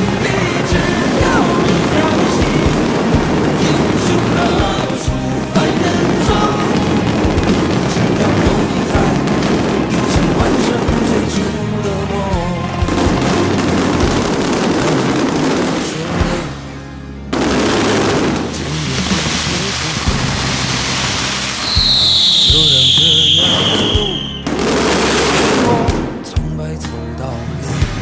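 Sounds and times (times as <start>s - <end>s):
firecrackers crackling: 0.0s - 16.7s, 17.3s - 26.4s
music soundtrack: 0.0s - 28.0s
high falling whistle: 21.6s - 24.6s.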